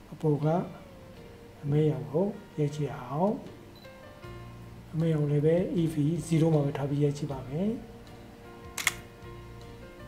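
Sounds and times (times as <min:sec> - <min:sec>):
quiet background music: 0:00.0 - 0:10.0
camera shutter click: 0:08.8 - 0:09.1.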